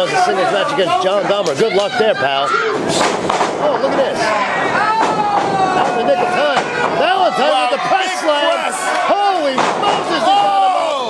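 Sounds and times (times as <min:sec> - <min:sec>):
fans shouting: 0:00.0 - 0:11.0
wrestlers thudding on ring: 0:04.6 - 0:07.7, 0:09.3 - 0:10.6.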